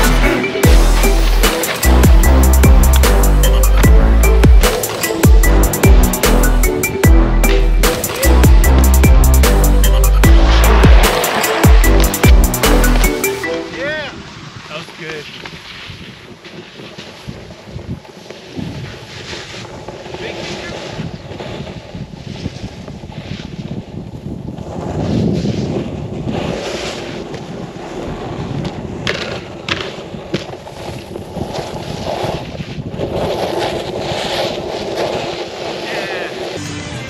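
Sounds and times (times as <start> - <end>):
snowboard scraping over snow: 0.0 - 37.0
wind rushing over microphone: 13.8 - 36.4.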